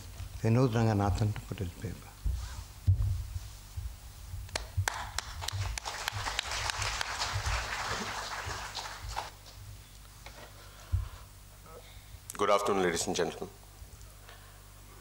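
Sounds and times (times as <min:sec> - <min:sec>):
low thumps: 0:02.2 - 0:05.7
audience applause: 0:04.6 - 0:09.4.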